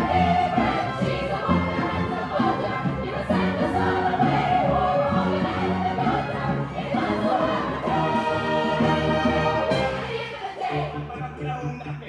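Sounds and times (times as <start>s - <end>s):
chorus of young voices singing: 0.0s - 11.4s.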